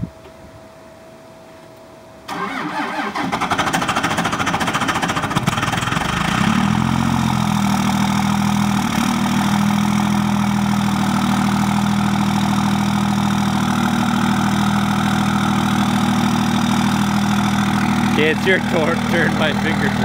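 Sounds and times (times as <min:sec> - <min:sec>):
starter motor cranking: 0:02.3 - 0:06.1
diesel engine idling: 0:02.3 - 0:20.0.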